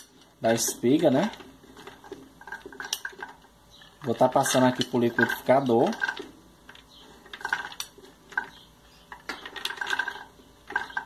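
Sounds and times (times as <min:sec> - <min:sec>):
kernels dropping into plastic jar: 0:04.1 - 0:11.0.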